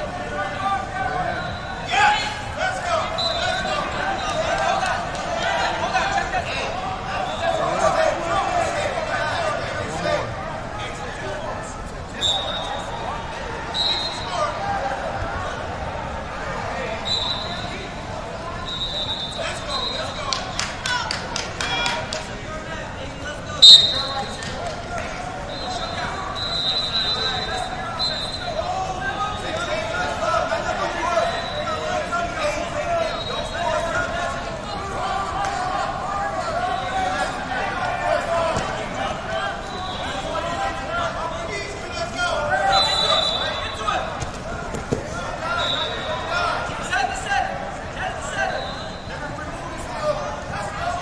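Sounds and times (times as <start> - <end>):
murmur of voices in gym: 0.0 - 51.0
referee whistle blast: 12.2 - 13.0, 23.6 - 24.4, 25.5 - 28.5, 42.7 - 43.9, 45.5 - 46.3, 48.5 - 49.2.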